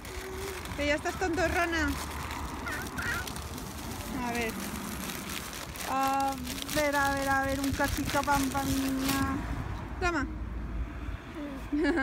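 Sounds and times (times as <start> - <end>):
toddler squealing: 0.0 - 0.8, 2.6 - 3.4.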